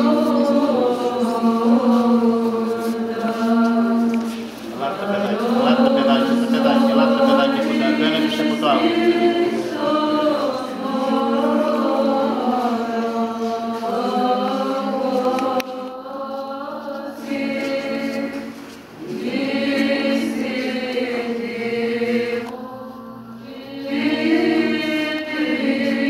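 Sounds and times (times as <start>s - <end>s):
voices chanting together: 0.0s - 26.0s.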